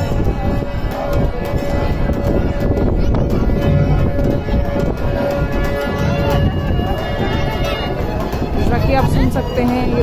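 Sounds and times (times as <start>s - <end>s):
hand drum beating: 0.0s - 10.0s
harmonium reed tone: 0.0s - 10.0s.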